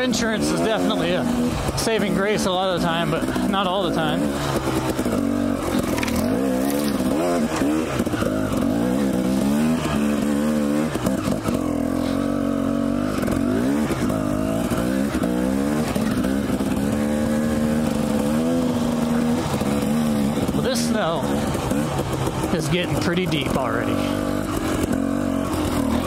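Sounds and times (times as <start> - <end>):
dirt bike engine revving: 0.0 - 26.0.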